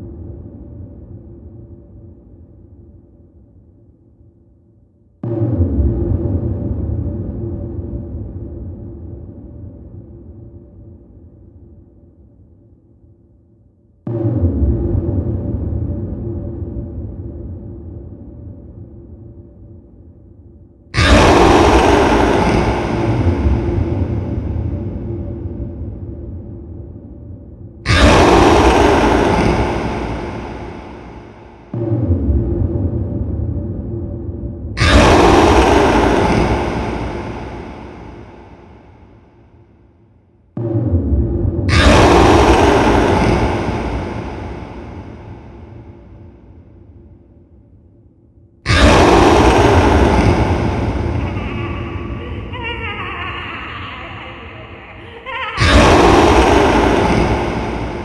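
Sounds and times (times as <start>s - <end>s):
low rumbling drone: 0.0s - 58.0s
harsh noise music: 27.9s - 32.7s, 34.8s - 38.3s, 41.7s - 44.9s, 48.7s - 58.0s.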